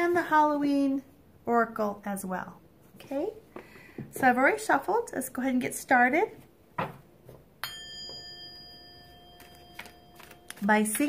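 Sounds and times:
metal chime ringing: 7.6s - 10.5s.

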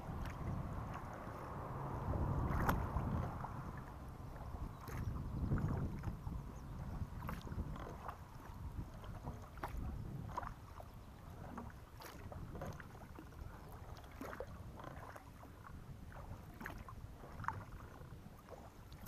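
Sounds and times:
paddle splashes and drips: 0.0s - 19.0s
wind rumble on microphone: 0.0s - 19.0s.

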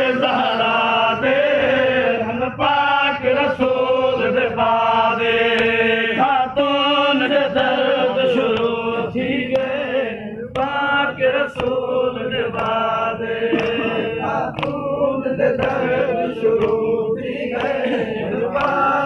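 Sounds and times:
chanted singing: 0.0s - 19.0s.

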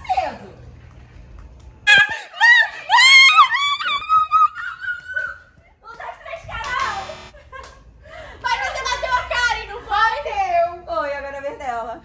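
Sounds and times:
buzzy vocal burst: 6.7s - 7.3s.

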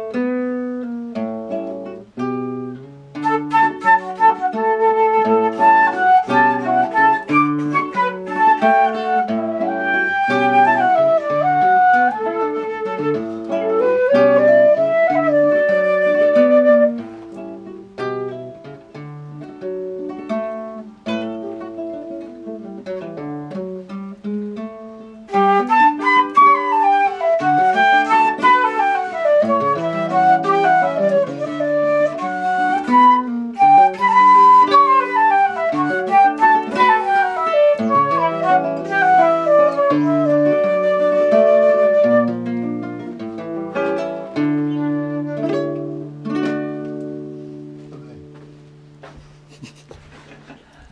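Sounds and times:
nylon-string guitar: 0.0s - 50.9s
flute melody: 3.1s - 17.8s, 25.2s - 47.5s.

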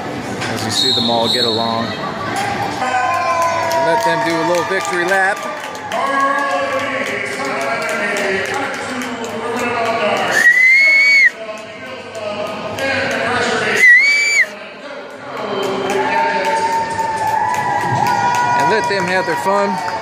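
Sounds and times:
referee's whistle blasts: 0.7s - 2.0s.

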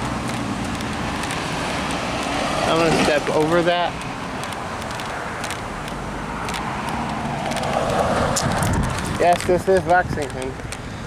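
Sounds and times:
vehicle driving past: 0.0s - 4.4s, 6.0s - 9.2s
traffic background rush: 0.0s - 11.0s.

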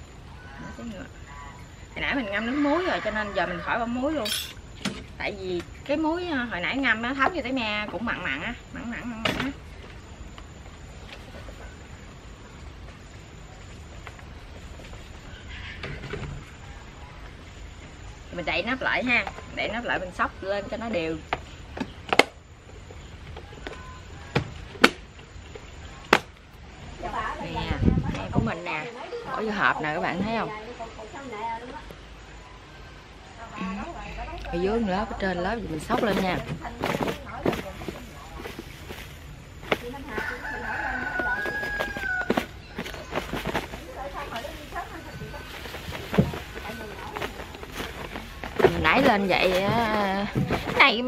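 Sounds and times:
rooster crowing: 2.3s - 4.2s, 39.9s - 42.9s.

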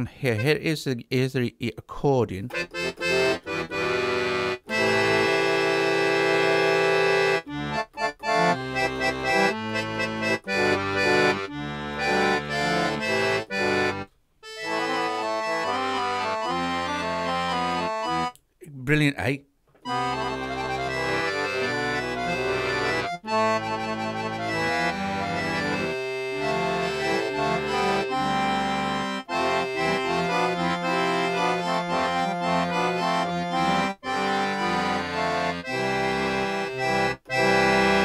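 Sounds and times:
accordion playing sustained chords: 2.5s - 18.4s, 19.8s - 38.0s.

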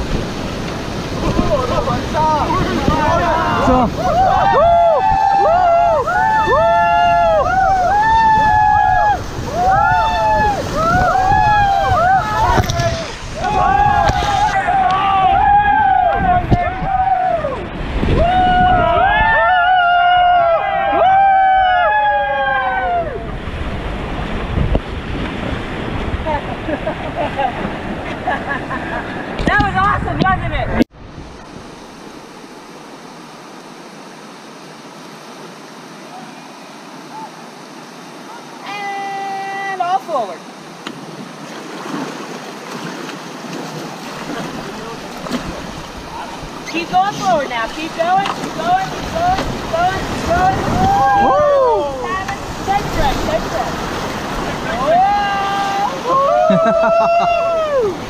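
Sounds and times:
rush of whitewater rapids: 0.0s - 58.0s
steady flow of river water: 0.0s - 58.0s
people whooping and yelling: 1.5s - 23.4s, 48.6s - 52.9s, 54.6s - 58.0s.

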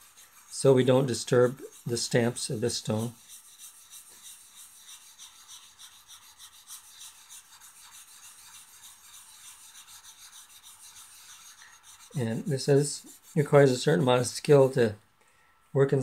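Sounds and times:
plate rasping on wet whetstone: 0.0s - 12.3s.

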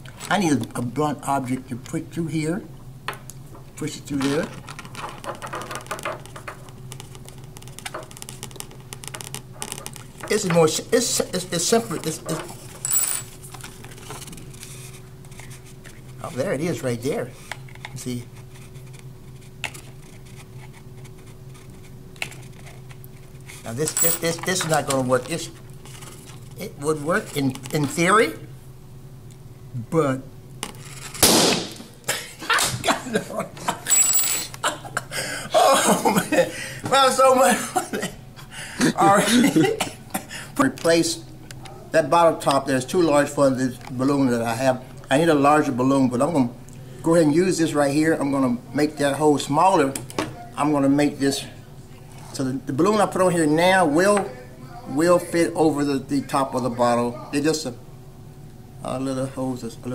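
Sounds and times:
low steady hum: 0.0s - 59.9s
balloon rubbing and clicks: 5.8s - 10.4s
balloon bursting with sharp bang: 31.2s - 31.9s
man laughing: 32.1s - 40.0s.

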